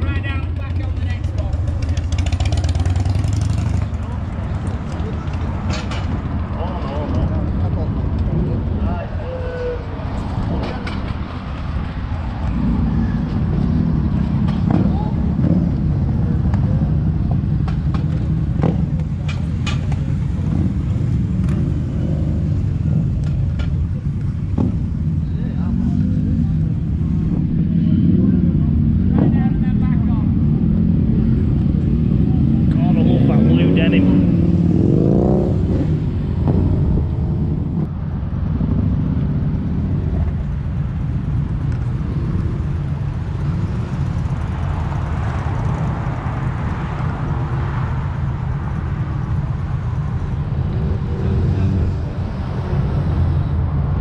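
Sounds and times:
people talking: 0.0 - 2.2, 3.9 - 5.5, 6.5 - 9.9, 14.7 - 15.3, 25.2 - 26.7, 27.8 - 30.4, 32.3 - 34.3
motorcycle engines rumbling: 0.0 - 54.0.

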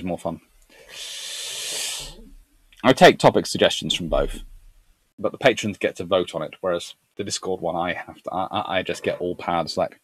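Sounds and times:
man speaking: 0.0 - 0.4, 2.8 - 4.6, 5.2 - 10.0
breath hissing into microphone: 0.7 - 2.4.

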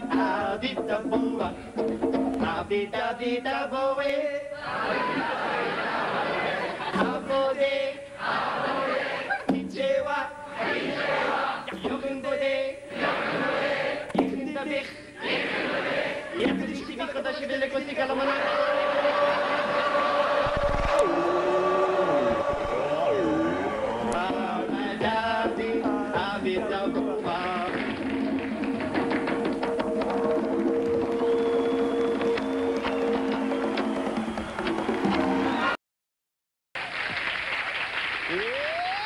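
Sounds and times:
low conga thumps: 0.0 - 2.8, 14.1 - 14.6, 22.2 - 35.4
men chanting long notes: 18.2 - 27.8
audience applauding: 27.6 - 35.8, 36.8 - 39.0.

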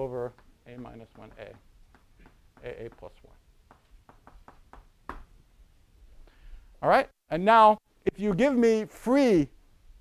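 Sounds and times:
chalk tapping on blackboard: 0.0 - 5.3.

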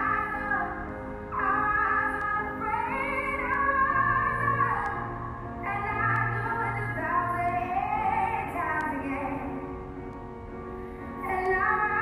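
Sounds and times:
slow sung music: 0.0 - 12.0.

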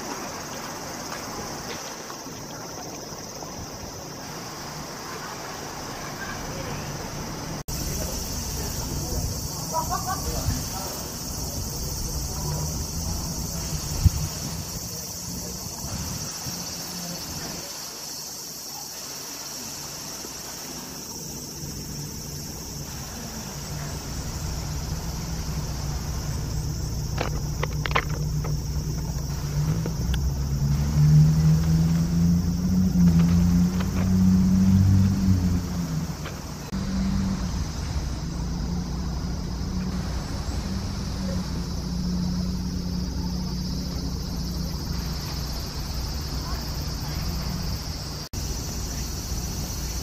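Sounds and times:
cicadas chorus: 0.0 - 50.0
low engine hum: 3.7 - 17.4, 21.2 - 50.0.

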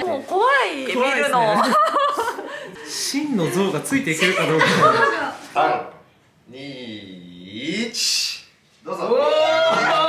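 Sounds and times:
people exclaiming and laughing: 1.1 - 5.7, 8.9 - 10.0.

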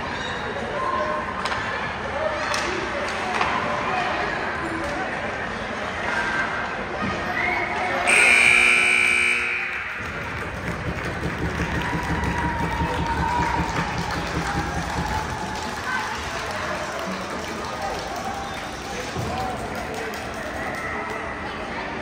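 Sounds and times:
crowd noise and voices: 0.0 - 22.0
ice rink horn: 8.1 - 10.3.

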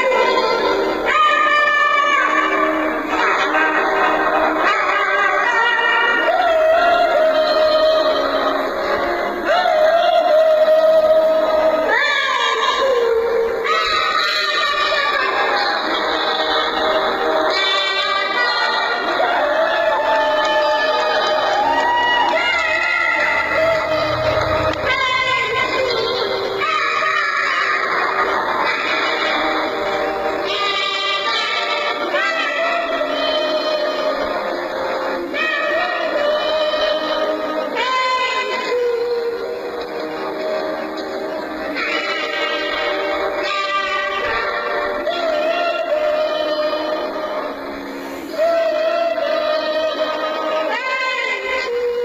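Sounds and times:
backing track music: 0.0 - 52.0
child singing into a microphone: 9.5 - 16.6, 22.3 - 29.5, 30.4 - 34.4, 35.3 - 40.0, 41.7 - 47.4, 48.3 - 52.0.

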